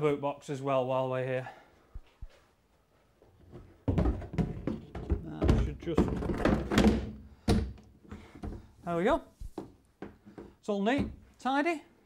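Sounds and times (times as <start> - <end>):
hollow thunks and knocks: 3.5 - 8.8, 9.5 - 11.3.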